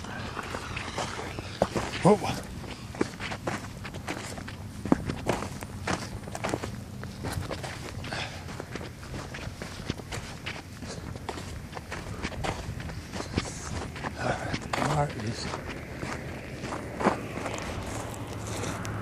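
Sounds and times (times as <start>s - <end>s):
footsteps of person walking: 0.0s - 19.0s.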